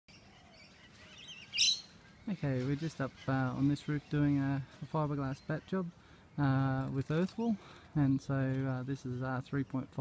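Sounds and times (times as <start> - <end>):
birds singing: 0.1 - 10.0.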